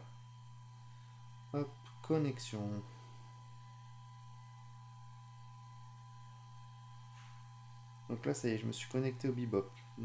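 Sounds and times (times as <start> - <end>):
cooling fan humming: 0.0 - 10.0.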